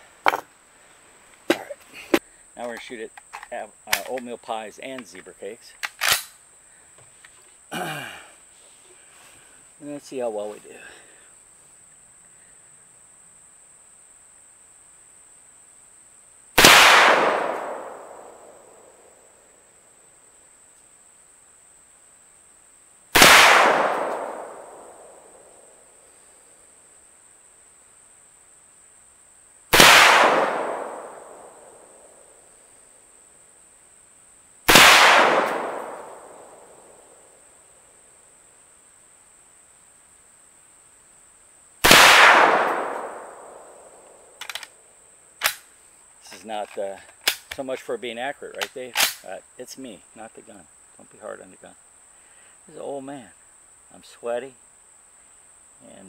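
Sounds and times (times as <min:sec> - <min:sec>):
rifle shots echoing: 0:16.6 - 0:18.9, 0:23.2 - 0:25.3, 0:29.7 - 0:31.8, 0:34.7 - 0:37.0, 0:41.8 - 0:44.7.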